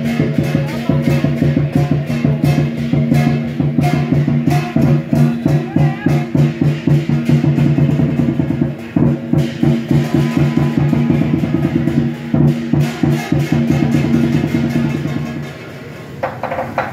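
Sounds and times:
large drum beaten fast: 0:00.0 - 0:15.7
cymbals clashing: 0:00.0 - 0:16.9.

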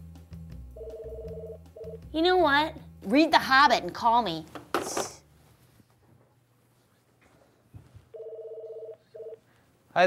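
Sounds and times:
desk telephone ringing: 0:00.8 - 0:02.0, 0:08.2 - 0:09.4.

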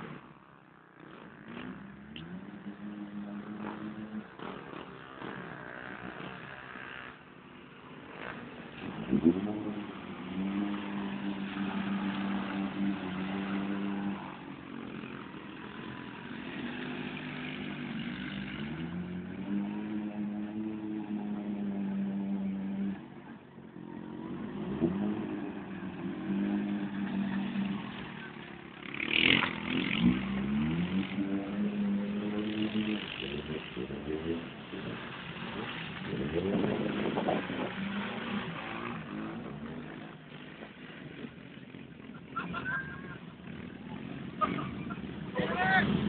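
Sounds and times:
engine revving hard: 0:08.2 - 0:22.9, 0:28.8 - 0:40.2.

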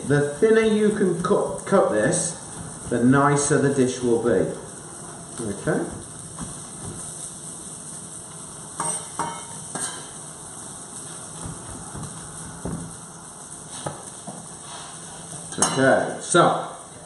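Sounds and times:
fish sizzling in a pan: 0:00.0 - 0:16.9.

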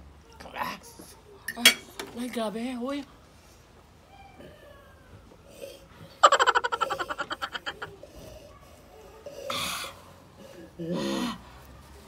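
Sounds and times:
woman laughing: 0:06.2 - 0:08.0.

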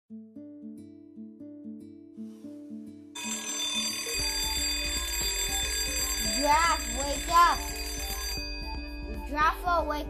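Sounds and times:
plucked guitar music: 0:00.1 - 0:10.0
shrill pulsing alarm ring: 0:03.2 - 0:09.6.

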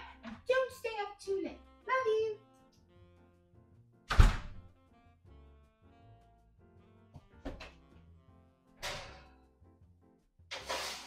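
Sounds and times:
soft background music: 0:00.0 - 0:11.0
door shutting thunk: 0:04.1 - 0:04.6.

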